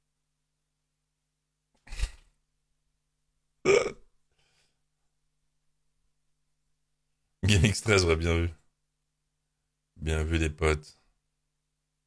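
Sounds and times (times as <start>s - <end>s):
burp or grunt: 3.6s - 4.1s.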